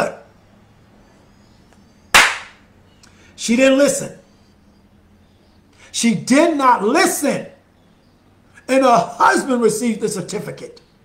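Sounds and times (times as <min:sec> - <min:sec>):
sharp loud smack: 0:02.2 - 0:02.6.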